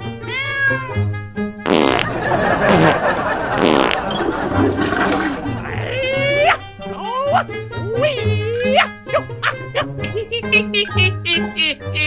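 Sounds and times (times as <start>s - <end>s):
toilet flushing: 2.6s - 5.6s.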